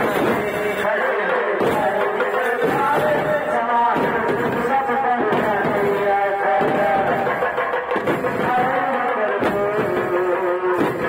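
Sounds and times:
man singing with held notes: 0:00.0 - 0:07.4, 0:08.3 - 0:11.0
barrel drum strokes: 0:01.6 - 0:11.0.

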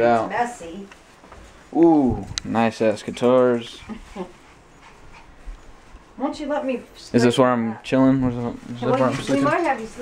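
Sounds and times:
dog panting: 0:03.0 - 0:06.2.

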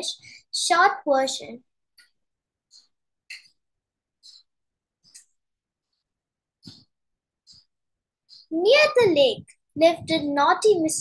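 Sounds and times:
short breaths: 0:00.2 - 0:00.5.

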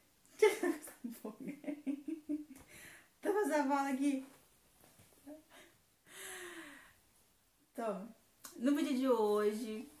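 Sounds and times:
soft breathy gasp: 0:05.5 - 0:07.0.

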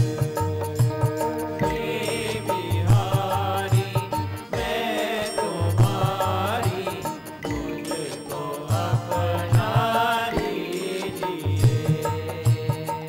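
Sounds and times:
devotional chanting with music: 0:00.0 - 0:13.0.

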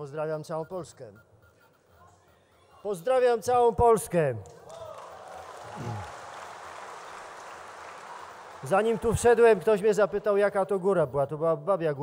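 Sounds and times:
audience applause: 0:04.7 - 0:09.9.

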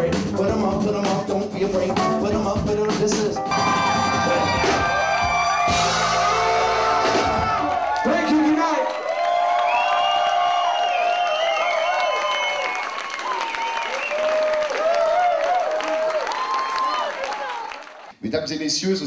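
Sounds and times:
funk band playing: 0:00.0 - 0:08.6
crowd cheering and whooping: 0:03.5 - 0:18.1.

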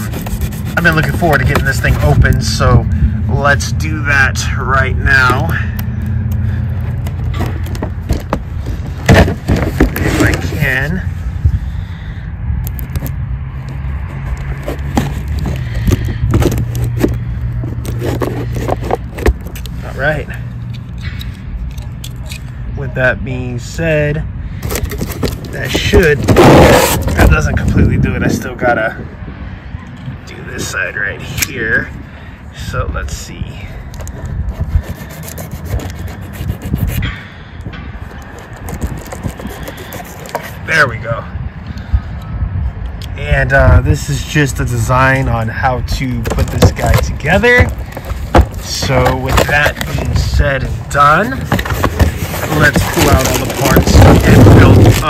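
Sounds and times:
knife slicing packing tape: 0:00.0 - 0:02.1, 0:24.7 - 0:27.3, 0:34.6 - 0:37.1, 0:38.3 - 0:40.6
serrated knife sawing cardboard: 0:00.0 - 0:02.5, 0:14.1 - 0:19.4, 0:24.6 - 0:27.4, 0:34.5 - 0:37.2, 0:38.3 - 0:40.7, 0:46.2 - 0:55.0.

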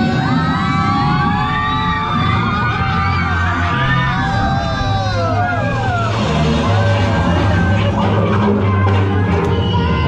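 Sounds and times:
loud rock music: 0:00.0 - 0:10.0
people screaming and whooping: 0:00.0 - 0:10.0.

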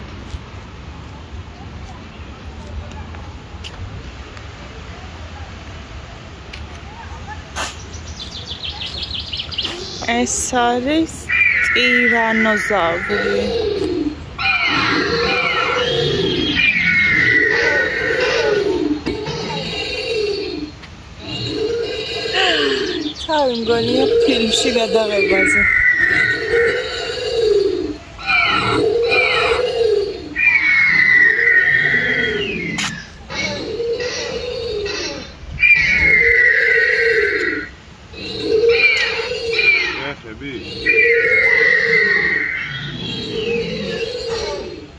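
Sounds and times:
dinosaur roar from loudspeaker: 0:13.0 - 0:23.0, 0:25.6 - 0:44.9
dinosaur roars from loudspeaker: 0:14.4 - 0:20.6.

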